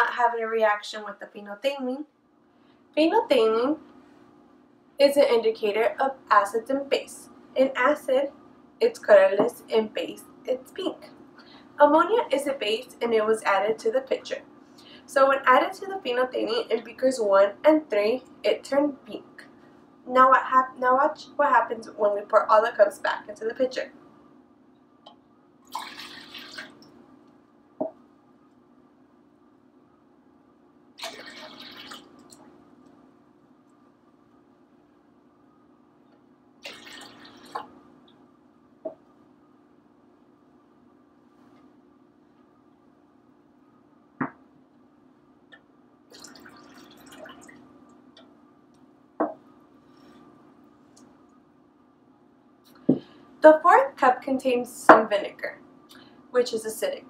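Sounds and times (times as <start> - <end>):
liquid pouring into pitcher: 25.6 - 27.0, 31.0 - 32.5, 36.6 - 37.8, 46.1 - 47.7
cup knocking down: 49.2 - 49.4.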